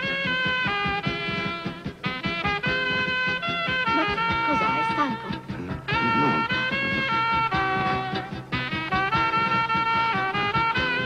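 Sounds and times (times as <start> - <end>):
dance orchestra playing a polka: 0.0 - 11.0.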